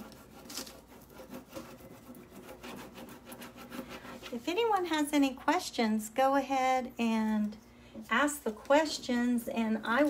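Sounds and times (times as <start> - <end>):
soft rubbing strokes on board: 0.0 - 4.7.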